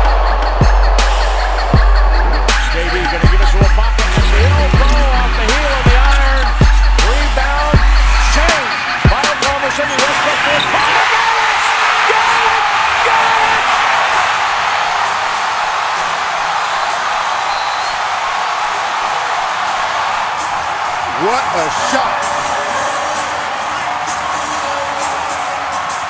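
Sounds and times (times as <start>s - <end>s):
arena crowd cheering: 0.0s - 26.0s.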